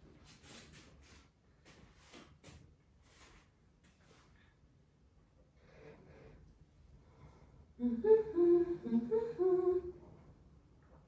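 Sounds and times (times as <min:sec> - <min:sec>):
woman humming: 0:07.8 - 0:10.0.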